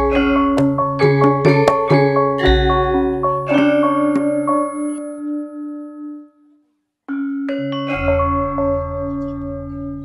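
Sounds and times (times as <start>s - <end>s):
gamelan instruments ringing: 0.0s - 6.3s, 7.1s - 10.0s.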